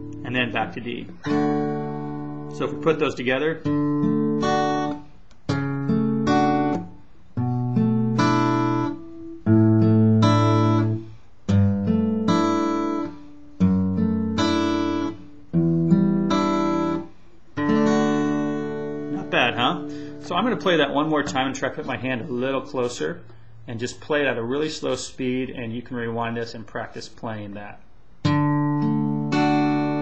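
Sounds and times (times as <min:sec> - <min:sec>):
acoustic guitar chords plucked: 0:00.0 - 0:24.8, 0:28.2 - 0:30.0.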